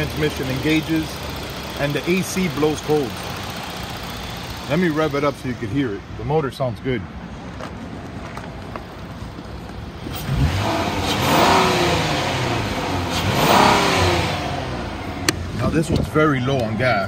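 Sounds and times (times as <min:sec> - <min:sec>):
car engine idling and revving: 0:00.0 - 0:17.0.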